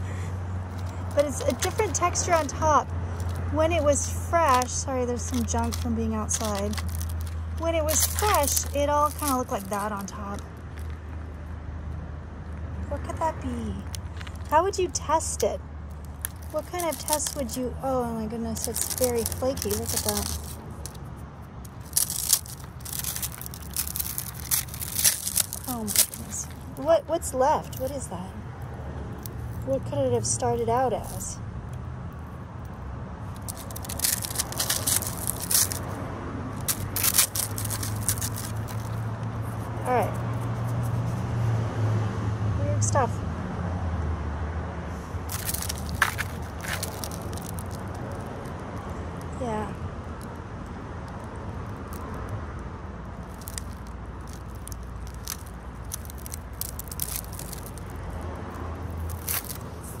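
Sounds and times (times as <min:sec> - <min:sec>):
crispy crust crackling: 0:00.7 - 0:11.5, 0:13.2 - 0:41.3, 0:45.2 - 1:00.0.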